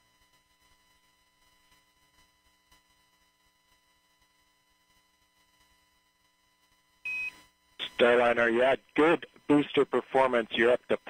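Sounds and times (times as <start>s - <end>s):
man's voice over radio: 7.8s - 11.0s
radio static: 7.8s - 11.0s.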